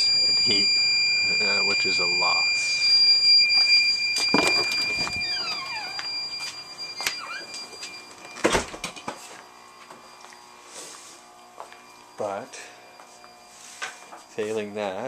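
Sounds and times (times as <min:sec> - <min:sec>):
high-pitched alarm tone: 0:00.0 - 0:15.0.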